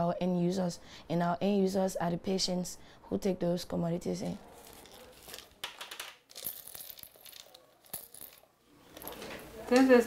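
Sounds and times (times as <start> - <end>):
plastic bottles clicking and rattling: 4.7 - 8.4.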